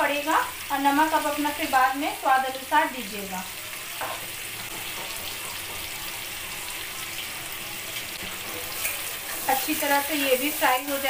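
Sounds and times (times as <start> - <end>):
vegetable pieces sizzling in oil: 0.0 - 11.0.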